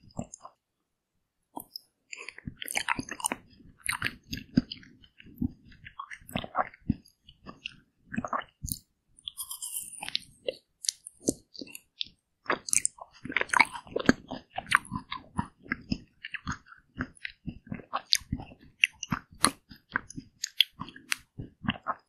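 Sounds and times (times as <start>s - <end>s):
chewing crunches: 1.6s - 22.0s
wet mouth clicks: 1.6s - 22.0s.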